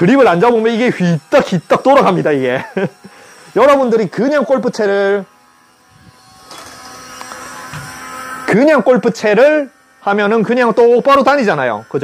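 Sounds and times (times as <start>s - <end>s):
small electric motor whirring: 0.0s - 12.0s.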